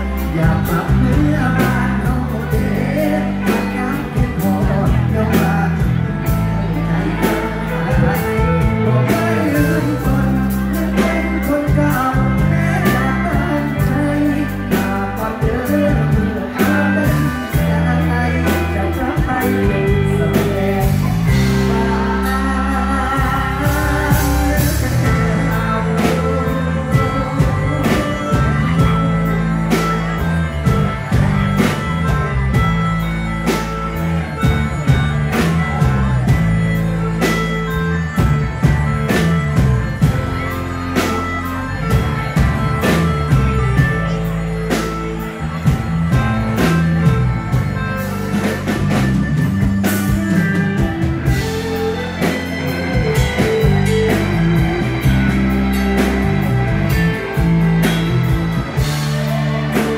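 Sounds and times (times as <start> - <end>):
bass guitar: 0.0 - 59.9
drum kit beat: 0.0 - 59.9
electric guitar: 0.0 - 59.9.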